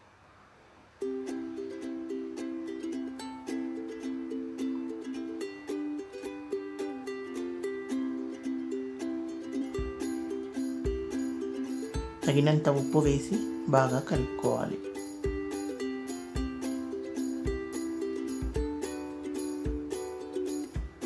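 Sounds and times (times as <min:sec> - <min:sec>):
plucked-string instrumental music: 0:01.0 - 0:21.0.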